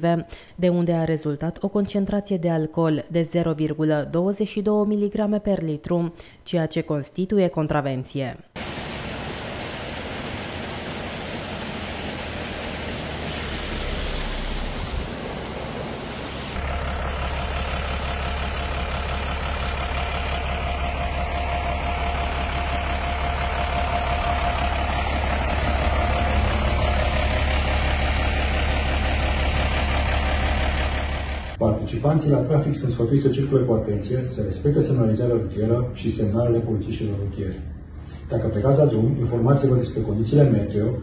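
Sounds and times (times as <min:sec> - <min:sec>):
steady rushing noise: 0:08.6 - 0:16.6
diesel truck engine idling: 0:08.6 - 0:31.6.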